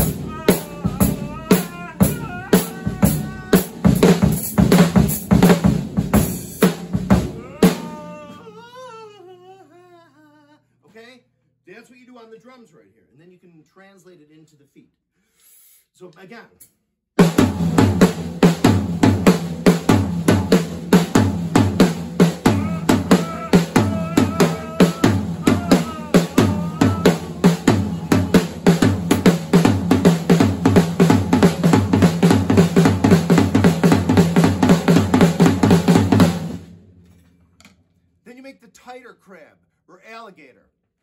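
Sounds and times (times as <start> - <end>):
drum kit rolling groove: 0.0 - 8.4, 17.2 - 37.0.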